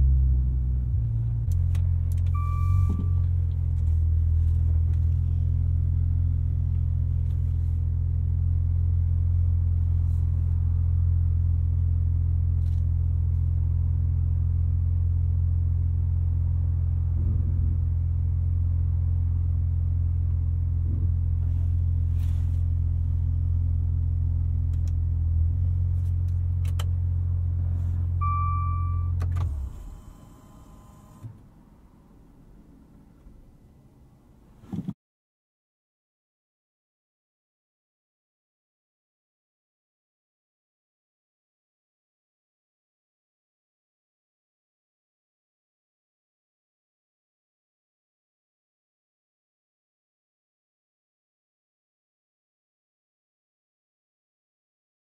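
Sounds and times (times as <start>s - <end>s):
car engine idling: 0.0s - 30.0s.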